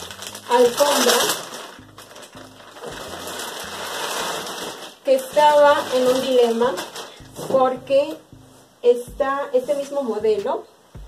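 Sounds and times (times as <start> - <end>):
plastic bag crinkling: 0.0 - 7.5
background music with bass: 0.0 - 11.0.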